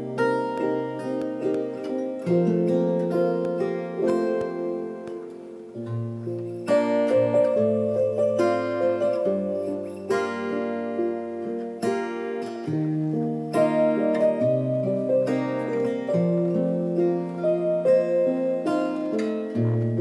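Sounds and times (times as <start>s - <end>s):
keyboard chords: 0.0s - 20.0s
plucked acoustic guitar: 0.0s - 20.0s.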